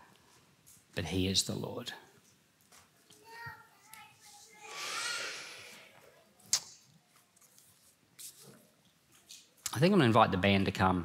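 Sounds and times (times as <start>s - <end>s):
breath into microphone: 4.6s - 6.0s.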